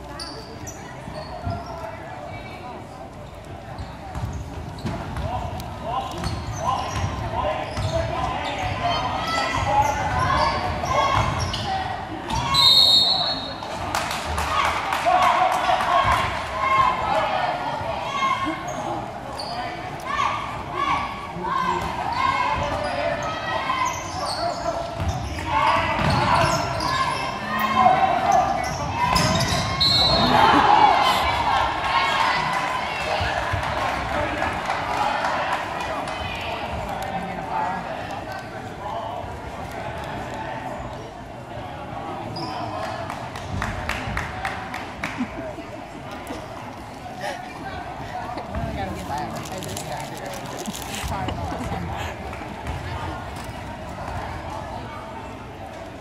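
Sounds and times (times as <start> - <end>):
crowd chatter and shouts: 0.0 - 56.0
basketball bouncing on court: 3.8 - 5.4, 6.2 - 8.0.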